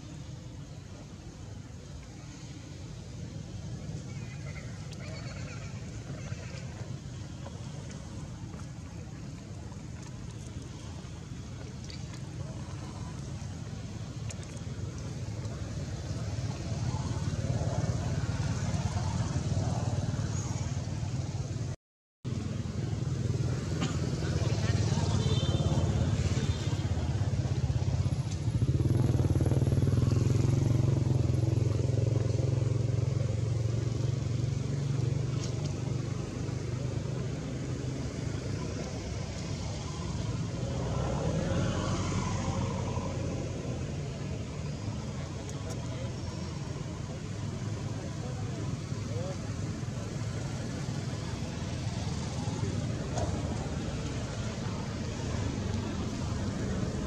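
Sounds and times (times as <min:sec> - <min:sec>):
faint voices: 0:00.0 - 0:21.7, 0:29.3 - 0:57.0
vehicle engine rumbling: 0:00.0 - 0:57.0.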